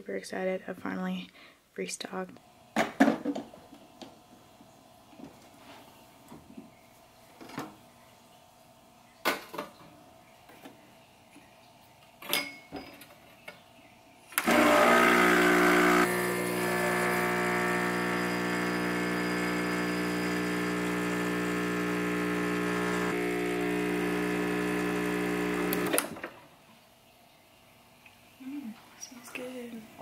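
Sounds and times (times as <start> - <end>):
espresso machine pump buzzing: 14.4 - 26.1.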